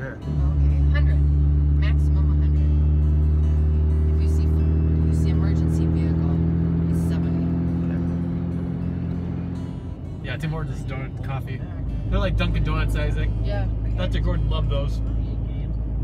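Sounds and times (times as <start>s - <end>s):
vehicle engine droning: 0.0s - 16.0s.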